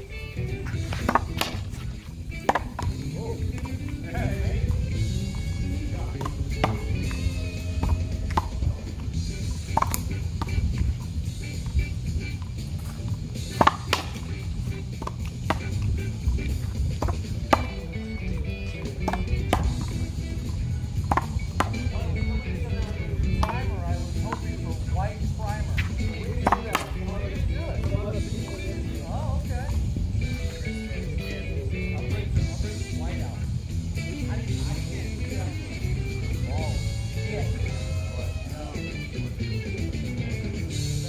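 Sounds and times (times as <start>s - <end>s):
background music: 0.0s - 41.0s
voices: 0.0s - 41.0s
racquetball pops: 0.8s - 3.8s, 6.2s - 10.9s, 11.5s - 18.1s, 18.7s - 22.0s, 23.3s - 24.4s, 25.8s - 27.0s.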